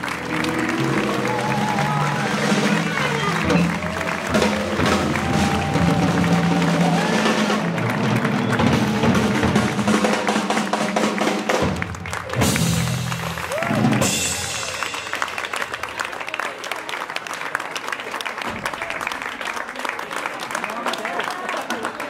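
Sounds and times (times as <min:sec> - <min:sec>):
swing jazz band playing: 0:00.0 - 0:15.8
people clapping along: 0:00.0 - 0:22.0.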